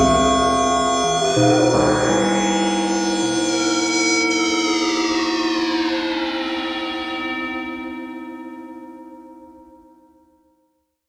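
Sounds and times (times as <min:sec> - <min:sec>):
siren-like downward pitch glide: 0:00.0 - 0:09.2
synthesizer drone tones: 0:00.0 - 0:09.2.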